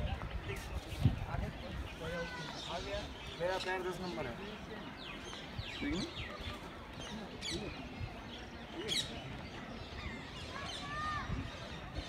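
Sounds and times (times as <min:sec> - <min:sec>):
birds chirping and calling: 0:00.0 - 0:12.0
outdoor background noise: 0:00.0 - 0:12.0.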